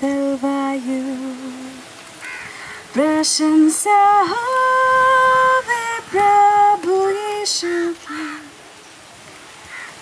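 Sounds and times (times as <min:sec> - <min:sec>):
woman singing a hymn: 0:00.0 - 0:02.0, 0:02.8 - 0:08.6.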